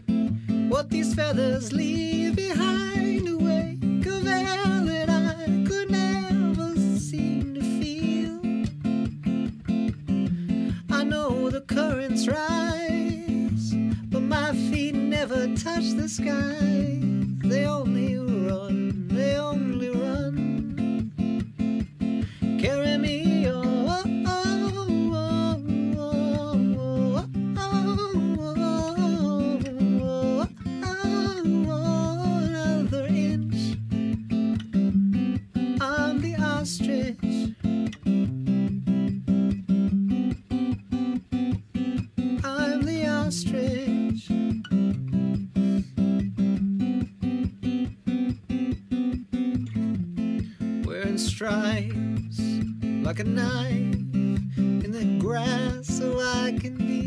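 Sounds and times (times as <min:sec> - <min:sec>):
acoustic guitar strumming: 0:00.0 - 0:57.0
man singing: 0:00.5 - 0:08.7, 0:10.5 - 0:21.3, 0:22.0 - 0:34.0, 0:35.6 - 0:37.6, 0:42.2 - 0:44.7, 0:50.8 - 0:57.0.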